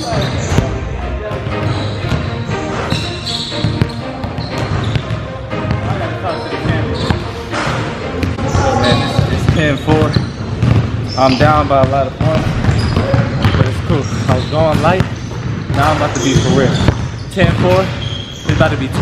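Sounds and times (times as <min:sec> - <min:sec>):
background music: 0:00.0 - 0:17.8
basketball bouncing on wooden floor: 0:01.4 - 0:05.9, 0:08.2 - 0:19.0
voices: 0:05.8 - 0:10.2.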